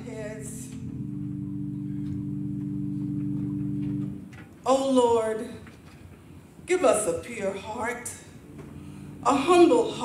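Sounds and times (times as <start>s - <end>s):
instrument holding low chord: 0.0s - 4.4s, 8.2s - 10.0s.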